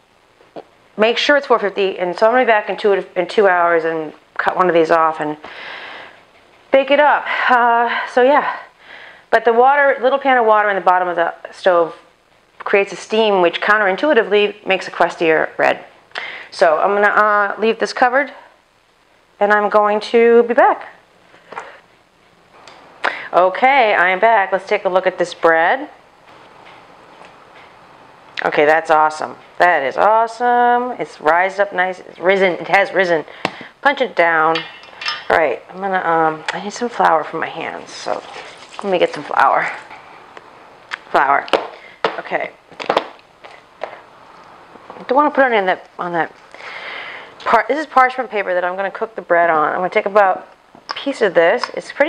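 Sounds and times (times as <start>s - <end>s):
parchment paper rustling: 37.6s - 40.2s.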